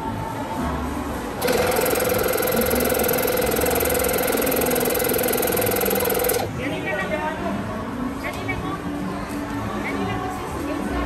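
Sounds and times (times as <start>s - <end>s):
electric air pump buzzing: 1.4s - 6.5s.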